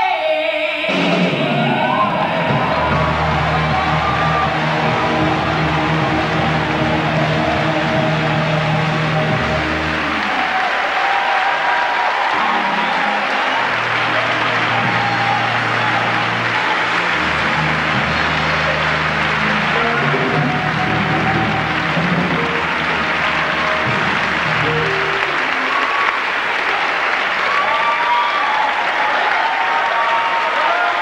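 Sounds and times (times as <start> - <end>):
live gospel band: 0.9 - 26.6
audience applauding: 1.2 - 31.0.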